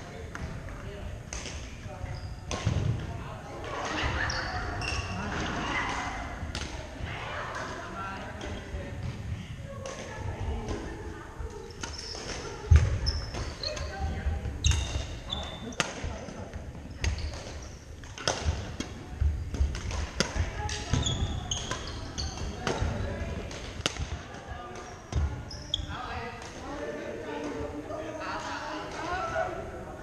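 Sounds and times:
sneakers squeaking on wooden floor: 2.0 - 2.8, 3.9 - 5.3, 11.8 - 15.8, 16.8 - 18.0, 20.8 - 23.1, 24.8 - 26.1
rackets striking shuttlecock: 17.0 - 25.4.

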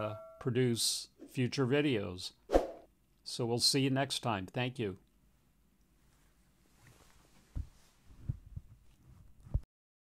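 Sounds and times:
soft low thumps: 7.5 - 9.6.

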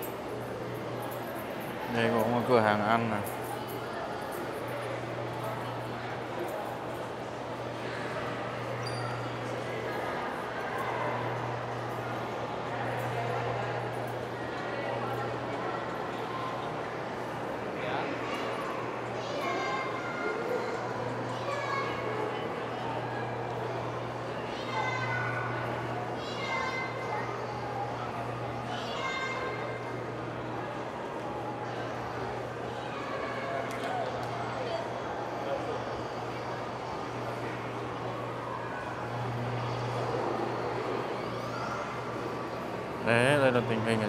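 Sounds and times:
murmur of distant voices: 0.0 - 44.0.

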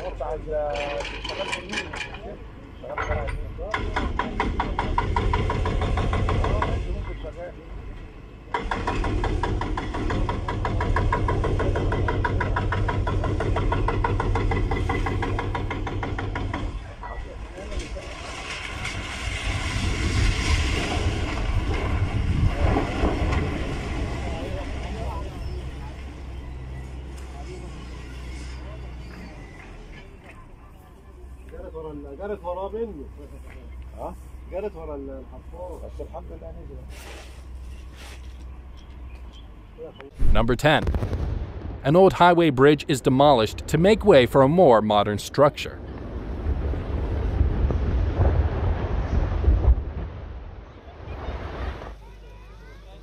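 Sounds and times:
building collapsing: 8.6 - 26.5, 40.2 - 52.0.

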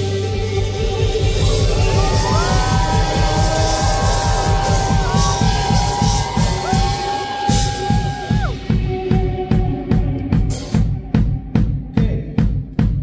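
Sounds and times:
rock band playing: 0.0 - 13.0.

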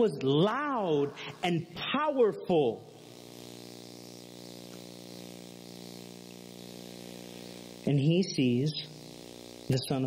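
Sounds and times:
man's voice: 0.0 - 2.9, 7.8 - 8.9, 9.7 - 10.0
faint hiss: 0.0 - 10.0
steady background hum: 0.0 - 10.0.

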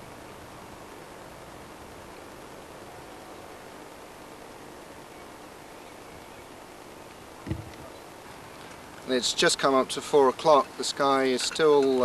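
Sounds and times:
steady background hiss: 0.0 - 12.0
low thump: 7.4 - 7.9.

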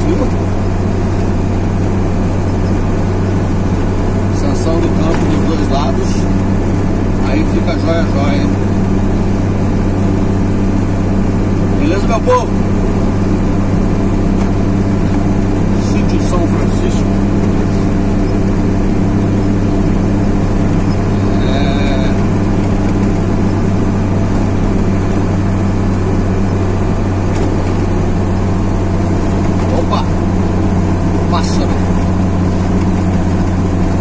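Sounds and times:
vehicle engine and tyre drone: 0.0 - 34.0.

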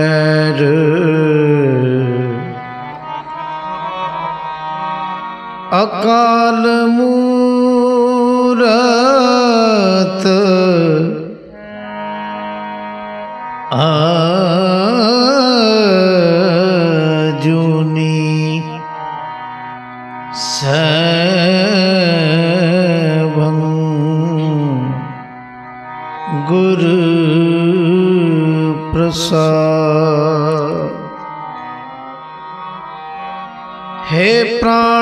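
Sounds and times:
harmonium held notes: 0.0 - 35.0
person singing devotional song: 0.0 - 35.0.

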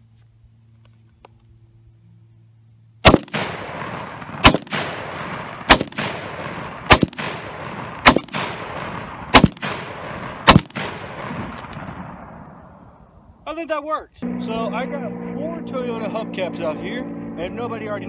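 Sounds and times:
rifle shots with echo: 3.0 - 12.8.

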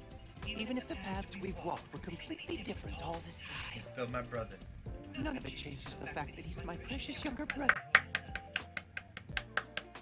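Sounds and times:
background music: 0.0 - 10.0
person clapping hands rapidly: 7.2 - 10.0.

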